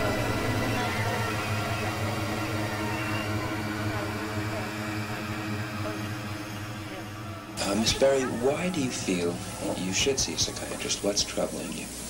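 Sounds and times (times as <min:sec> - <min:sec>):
eerie tones: 0:00.0 - 0:12.0
faint murmuring voices: 0:00.0 - 0:12.0
low hum: 0:00.0 - 0:12.0.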